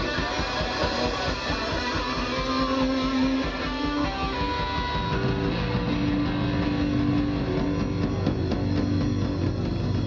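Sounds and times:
bass guitar: 0:00.0 - 0:10.0
drum kit: 0:00.0 - 0:10.0
electric guitar sustained notes: 0:00.0 - 0:10.0.

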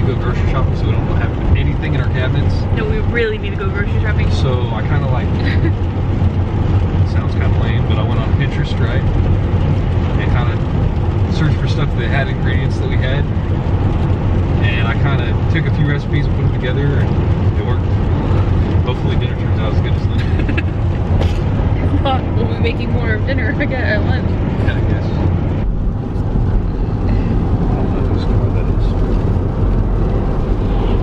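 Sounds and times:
people talking: 0:00.0 - 0:05.7, 0:07.1 - 0:09.0, 0:10.2 - 0:10.6, 0:11.3 - 0:13.3, 0:14.6 - 0:25.2, 0:27.1 - 0:29.2
vehicle road and engine rumble: 0:00.0 - 0:31.0.

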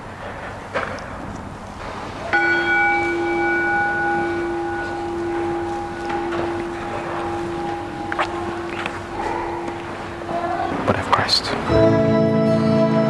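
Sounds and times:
bell ringing: 0:02.3 - 0:10.9.

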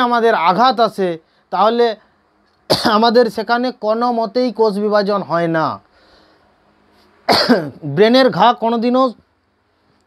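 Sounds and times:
man coughing: 0:02.7 - 0:03.1, 0:07.3 - 0:07.9.

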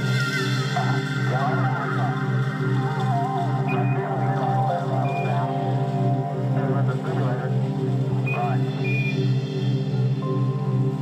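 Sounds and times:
low synth drone: 0:00.0 - 0:11.0.

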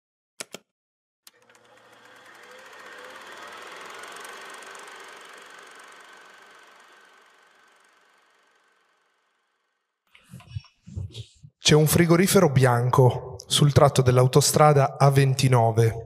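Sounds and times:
mechanical running noise: 0:01.3 - 0:09.8.

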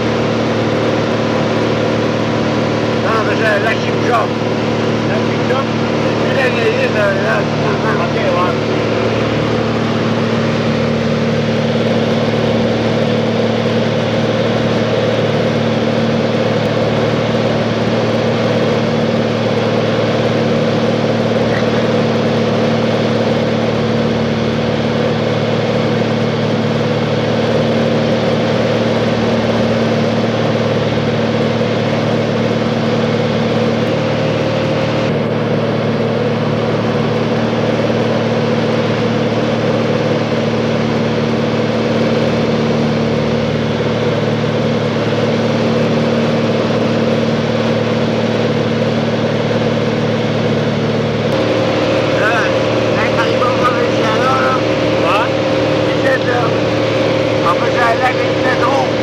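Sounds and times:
small plane engine drone in cabin: 0:00.0 - 0:59.0.

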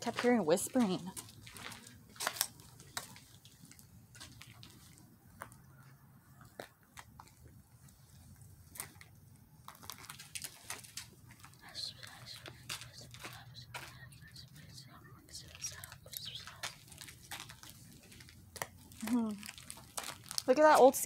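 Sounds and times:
footsteps crunching on debris: 0:00.0 - 0:05.6, 0:08.6 - 0:14.1, 0:15.8 - 0:20.8
faint low hum: 0:00.0 - 0:21.0.

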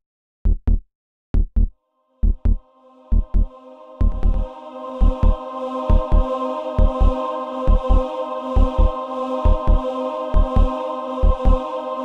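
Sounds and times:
heartbeat thumps: 0:00.5 - 0:08.0, 0:08.6 - 0:08.9, 0:09.5 - 0:09.8, 0:10.4 - 0:11.6.

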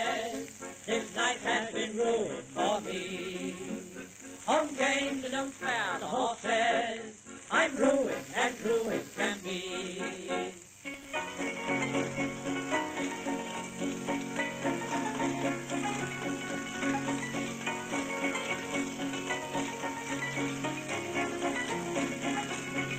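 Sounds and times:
record hiss: 0:00.0 - 0:22.9.

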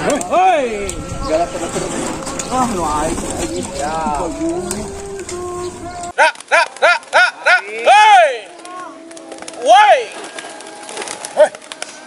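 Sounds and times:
person shouting: 0:03.8 - 0:10.2
pigeon wings fluttering: 0:06.2 - 0:07.3, 0:08.4 - 0:12.0.

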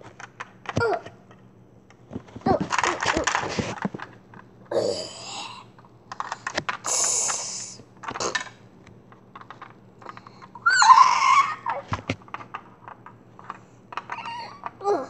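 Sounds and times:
clicks of lego pieces: 0:00.0 - 0:04.5, 0:05.8 - 0:10.6, 0:11.2 - 0:15.0
breathy hiss: 0:06.8 - 0:07.8
wavering cry: 0:10.6 - 0:11.9.

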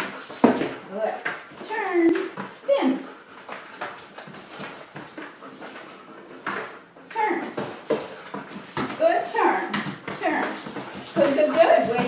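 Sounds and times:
dog paws tapping on cardboard: 0:03.3 - 0:12.0.

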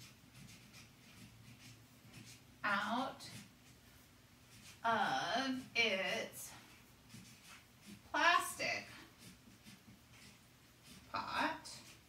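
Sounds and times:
marker pen scratching on paper: 0:00.0 - 0:12.0.

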